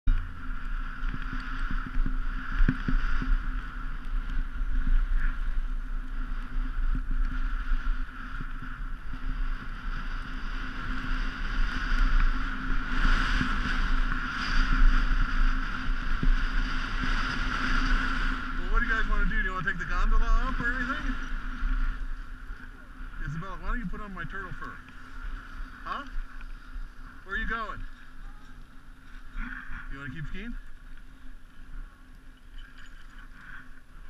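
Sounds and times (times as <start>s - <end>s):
skis sliding over snow: 0.1s - 34.0s.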